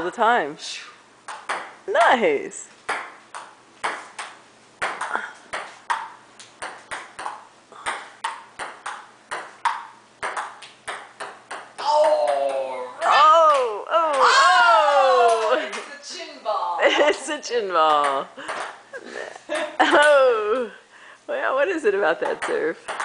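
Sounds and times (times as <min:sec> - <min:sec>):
table tennis ball clicking: 0:02.9 - 0:11.7
loud high voices: 0:11.8 - 0:15.5.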